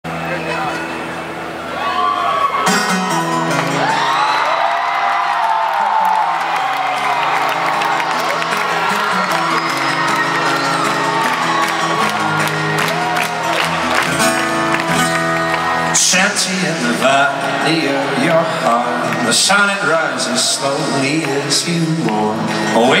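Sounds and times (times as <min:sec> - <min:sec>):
crowd cheering and whooping: 0:01.6 - 0:20.0
amplified acoustic guitar playing: 0:02.6 - 0:04.4, 0:06.0 - 0:23.0.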